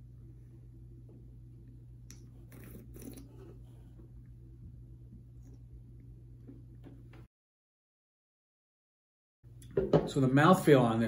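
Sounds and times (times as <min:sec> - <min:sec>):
low room hum: 0:00.0 - 0:07.3, 0:09.5 - 0:11.0.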